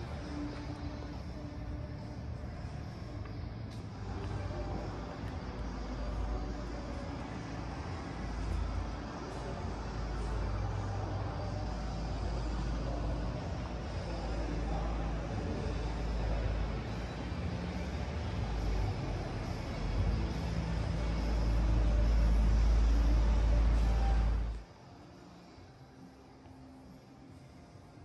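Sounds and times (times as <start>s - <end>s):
low rumble and hiss in a hall: 0.0s - 28.0s.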